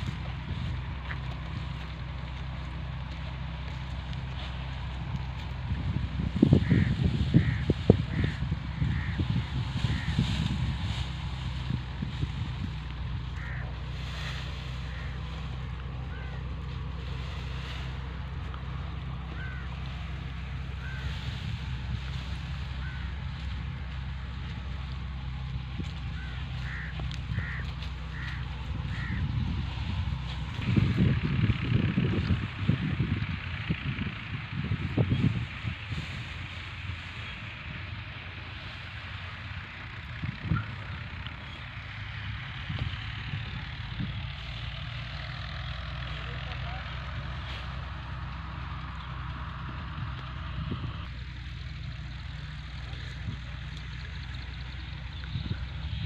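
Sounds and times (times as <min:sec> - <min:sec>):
tractor diesel engine idling: 0:00.0 - 0:56.0.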